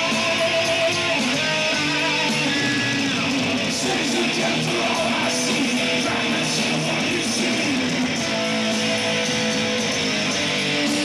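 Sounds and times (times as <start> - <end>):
thrash metal band playing live: 0.0 - 11.0.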